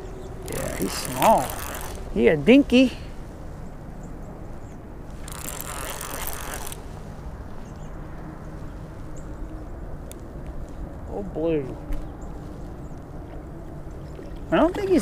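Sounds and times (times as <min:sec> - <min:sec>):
fishing reel whirring: 0:00.4 - 0:02.2, 0:05.1 - 0:06.8.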